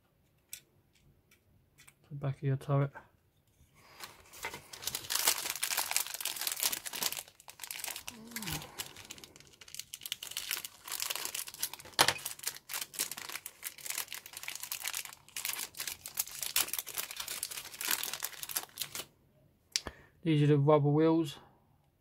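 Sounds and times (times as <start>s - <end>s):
plastic bag crinkling: 3.8s - 19.1s
sharp crackle: 4.8s - 19.0s.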